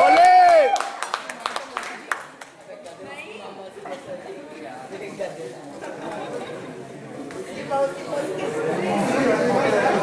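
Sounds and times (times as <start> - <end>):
indistinct chatter of voices: 1.6 - 10.0.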